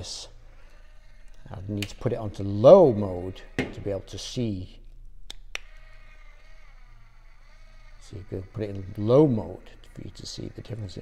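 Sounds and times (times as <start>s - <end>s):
small electric motor whine: 0.0s - 4.1s, 5.6s - 11.0s.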